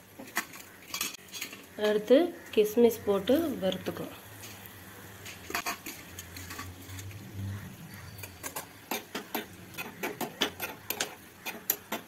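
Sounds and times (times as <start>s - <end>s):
utensils clinking on pan: 0.2s - 2.0s, 5.3s - 7.1s, 8.0s - 12.0s.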